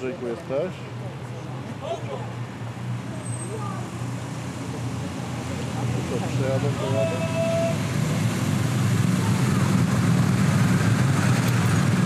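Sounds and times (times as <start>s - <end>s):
motorcade engines humming: 0.0s - 12.0s.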